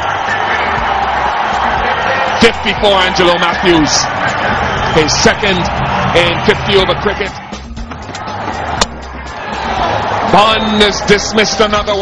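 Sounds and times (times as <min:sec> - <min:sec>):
crowd noise: 0:00.0 - 0:12.0
bat striking ball: 0:08.8 - 0:09.1.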